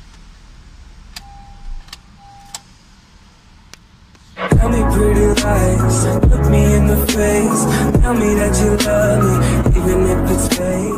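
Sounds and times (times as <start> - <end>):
steady high beep: 1.2 - 2.6.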